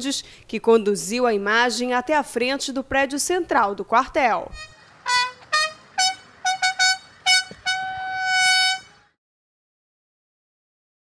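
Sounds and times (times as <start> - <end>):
military bugle call: 4.6 - 9.1.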